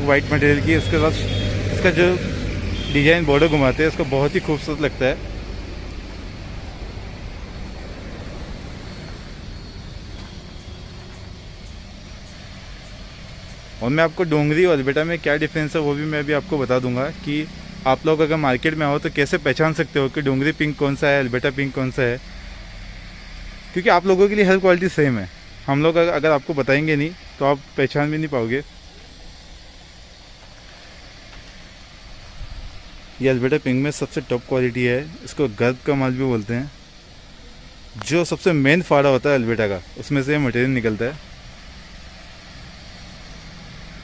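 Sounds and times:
man speaking: 0.0s - 2.3s, 2.9s - 5.2s, 13.8s - 22.2s, 23.8s - 28.7s, 33.2s - 36.8s, 38.0s - 41.2s
low background rumble: 0.0s - 13.9s
faint hum: 0.0s - 44.0s.

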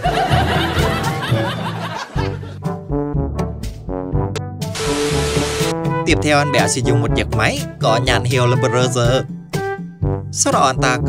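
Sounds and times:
overlapping laughter: 0.0s - 2.6s
background music with bass line: 0.0s - 11.0s.

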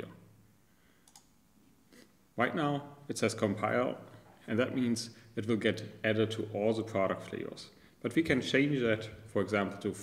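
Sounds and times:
faint computer clicks: 1.0s - 1.4s.

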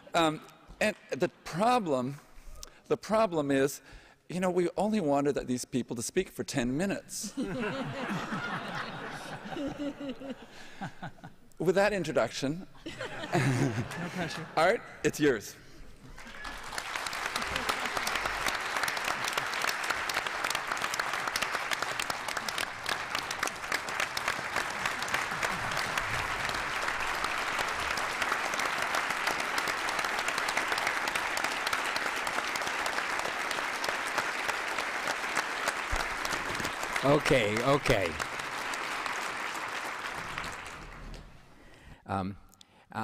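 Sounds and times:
audience applauding: 16.0s - 41.5s.

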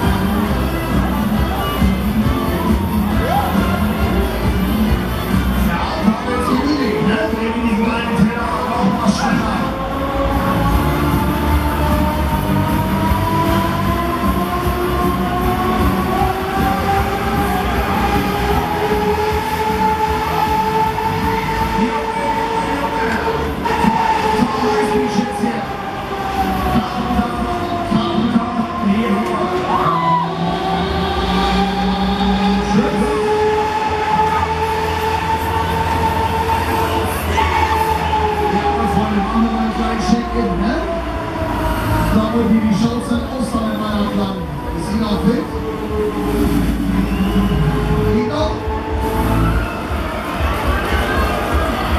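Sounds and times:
fairground ride rumbling: 0.0s - 51.9s
rising multi-tone whine: 0.0s - 51.9s.

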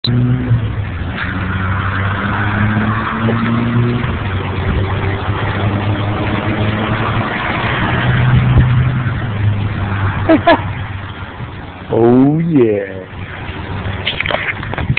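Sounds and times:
engine humming: 0.0s - 14.9s
person laughing: 10.3s - 10.7s.

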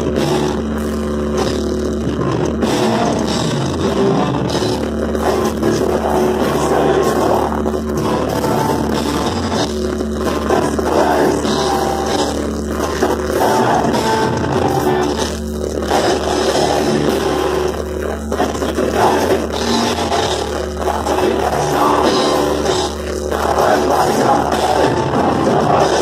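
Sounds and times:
distorted electric guitars: 0.0s - 26.0s
drums: 0.0s - 26.0s.

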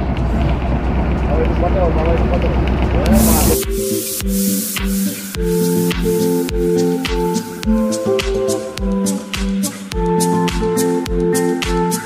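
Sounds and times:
boat engine throbbing: 0.0s - 7.9s
voices: 1.3s - 3.7s.

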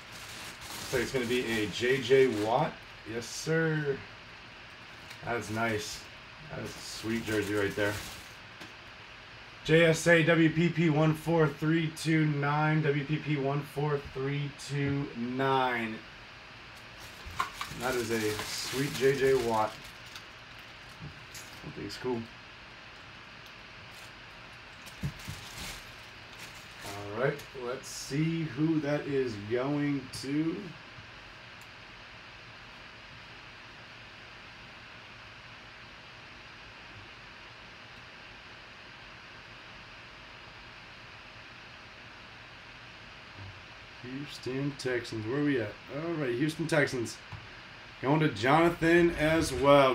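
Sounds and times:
paper rustling and crinkling: 0.0s - 2.6s, 6.6s - 8.5s, 17.0s - 21.7s, 23.8s - 27.0s
faint microphone hiss: 0.0s - 49.9s.

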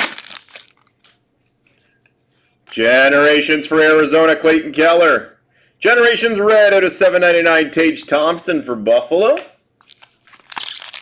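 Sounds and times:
plastic wrapper crinkling: 0.0s - 1.2s, 9.8s - 11.0s.

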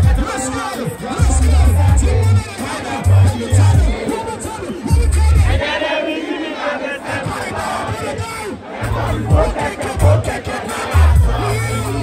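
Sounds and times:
loud music: 0.0s - 5.8s, 8.8s - 12.0s
crowd shouting and cheering: 0.0s - 12.0s
heavy bass notes: 1.2s - 4.2s, 4.9s - 5.6s, 8.8s - 12.0s.

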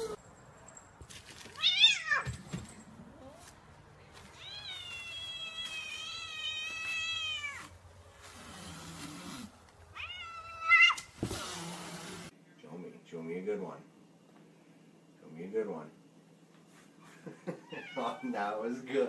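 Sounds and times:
cat meowing: 4.3s - 7.7s, 10.0s - 11.0s, 17.6s - 18.4s.

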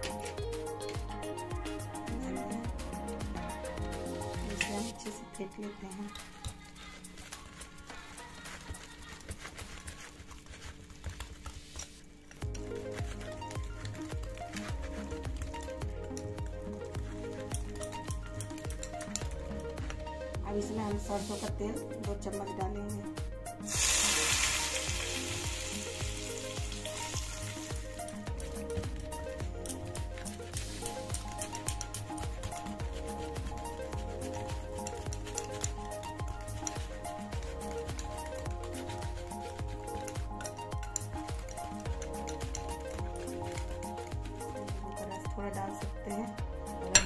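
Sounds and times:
background music: 0.0s - 47.0s
hot oil sizzling: 23.7s - 28.2s.

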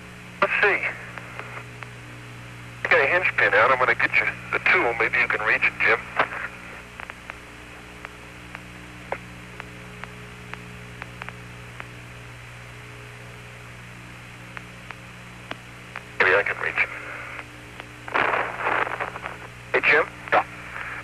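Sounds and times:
radio hum and hiss: 0.0s - 21.0s
faint clicks: 8.0s - 11.9s.

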